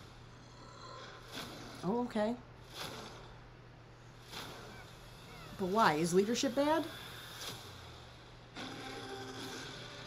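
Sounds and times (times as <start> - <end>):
film trailer soundtrack tones: 0.0 - 10.0
low steady hum: 0.0 - 10.0.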